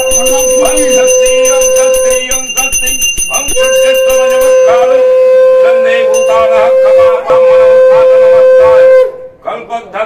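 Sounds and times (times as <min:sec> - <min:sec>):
conch shell blowing: 0:00.0 - 0:09.4.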